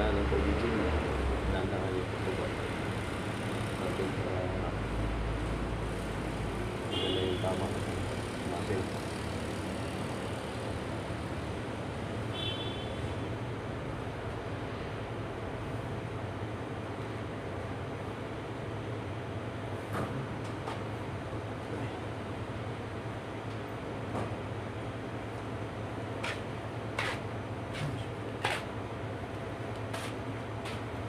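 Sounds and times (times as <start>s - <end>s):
low hum of city: 0.0s - 31.0s.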